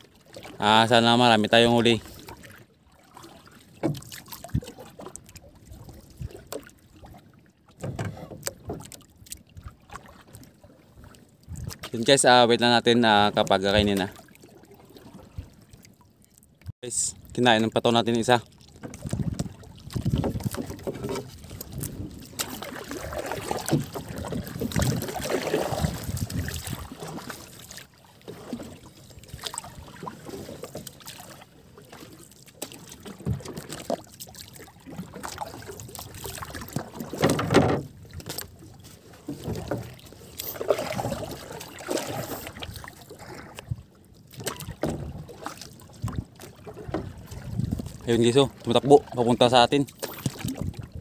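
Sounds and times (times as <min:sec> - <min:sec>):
water lapping against boat hull: 0:00.0 - 0:51.0.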